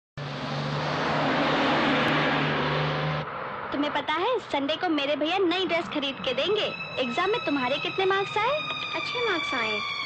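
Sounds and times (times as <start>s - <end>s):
bus engine humming: 0.2s - 10.0s
road noise: 0.2s - 10.0s.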